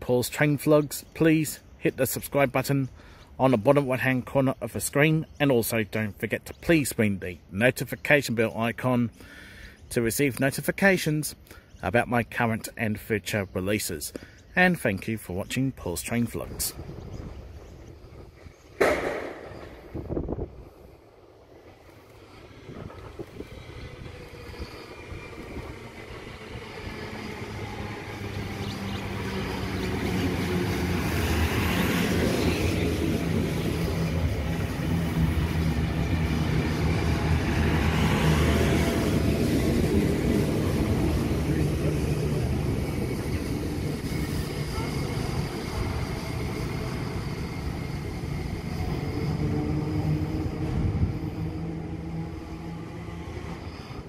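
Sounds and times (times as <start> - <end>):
train wheels rumbling on rails: 16.3 - 54.0
rattle on the rails: 16.5 - 54.0
electric train motor hum: 19.7 - 54.0.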